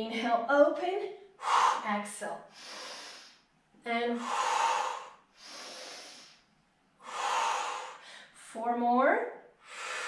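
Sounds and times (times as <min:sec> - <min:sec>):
woman breathing hard: 0:01.4 - 0:01.9, 0:02.5 - 0:03.4, 0:04.2 - 0:06.4, 0:07.0 - 0:08.4, 0:09.6 - 0:10.0.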